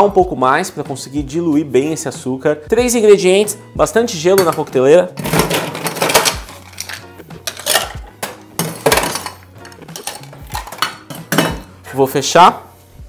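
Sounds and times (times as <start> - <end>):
ice cubes clinking in metal shaker: 5.2 - 11.7.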